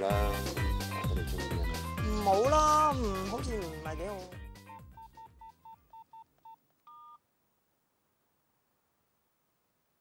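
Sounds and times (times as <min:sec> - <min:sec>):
mobile phone keypad beeping: 0:04.9 - 0:07.2.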